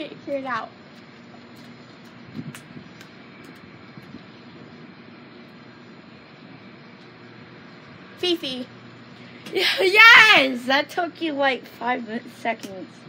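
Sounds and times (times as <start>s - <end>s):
background rumble and hiss: 0.0s - 13.0s
faint steady hum: 0.0s - 13.0s.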